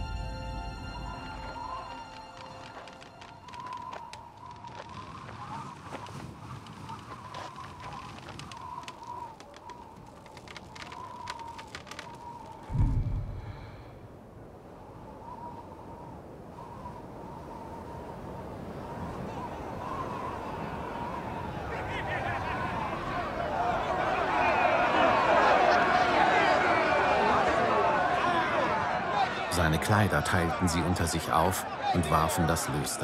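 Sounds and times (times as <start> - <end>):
faint clicks: 2.4 - 13.7
deep boom: 12.7 - 13.9.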